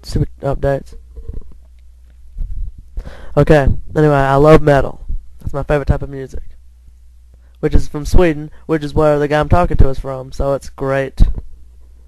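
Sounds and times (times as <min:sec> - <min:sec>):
faint low rumbles: 0:00.0 - 0:12.0
low microphone hum: 0:00.0 - 0:12.0.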